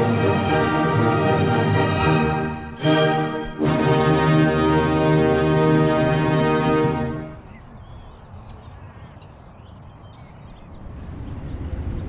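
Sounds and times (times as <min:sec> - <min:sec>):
distant traffic: 0:00.0 - 0:12.0
wind rumble: 0:07.0 - 0:12.0.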